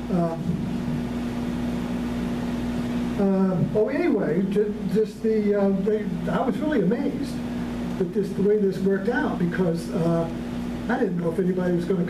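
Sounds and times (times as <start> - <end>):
even hiss: 0.0 - 12.0
low steady hum: 0.0 - 12.0.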